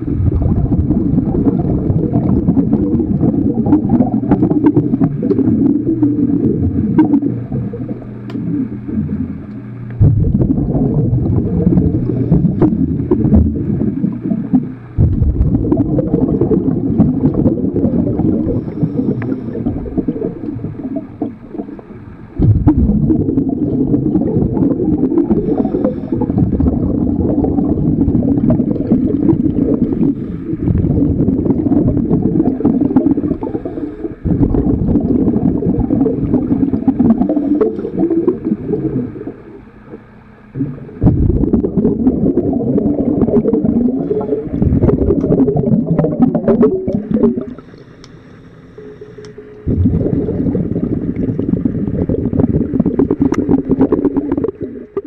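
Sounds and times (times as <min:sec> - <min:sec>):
underwater rumbling and bubbling: 0:00.0 - 0:55.0.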